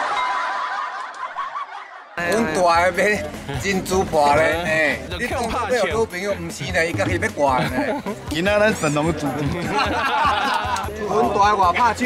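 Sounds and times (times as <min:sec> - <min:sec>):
snickering laughter: 0:09.4 - 0:11.0.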